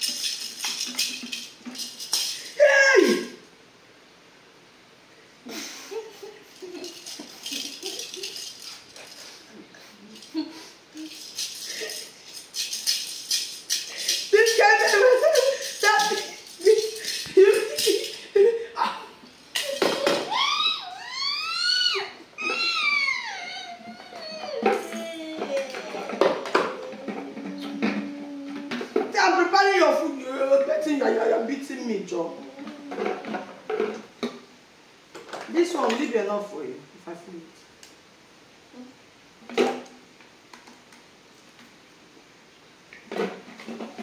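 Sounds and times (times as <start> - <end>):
plastic baby toys rattling: 0.0 - 2.6, 6.6 - 9.4, 11.0 - 18.4, 32.4 - 34.1
adult mock baby crying: 2.4 - 3.4, 14.3 - 29.2, 32.2 - 33.7
low steady hum: 3.2 - 35.1.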